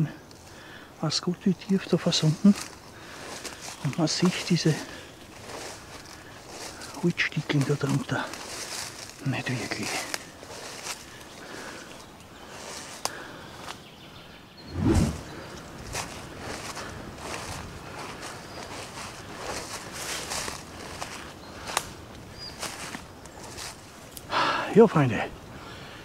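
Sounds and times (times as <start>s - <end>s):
leaves swishing against legs: 2.2s - 11.3s, 14.7s - 24.3s
footsteps through leaves: 2.2s - 11.8s, 14.7s - 21.8s, 22.4s - 24.1s.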